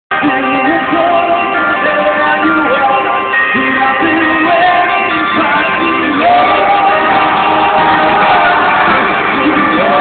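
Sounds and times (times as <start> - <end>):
live rock band playing: 0.1 - 10.0
man singing: 0.1 - 10.0.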